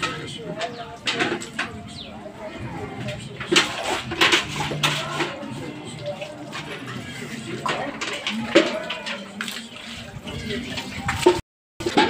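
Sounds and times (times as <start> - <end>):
indistinct voices: 0.0 - 12.0.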